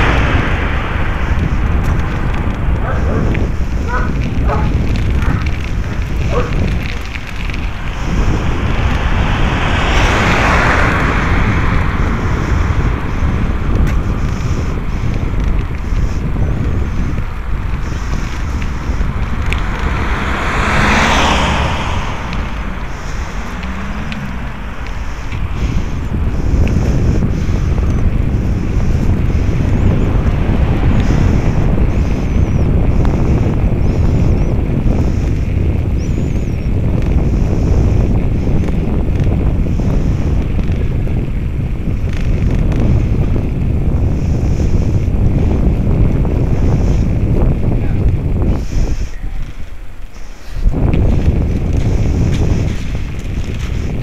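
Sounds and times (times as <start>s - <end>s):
vehicles whooshing past: 0.0s - 43.2s
wind buffeting microphone: 0.0s - 54.0s.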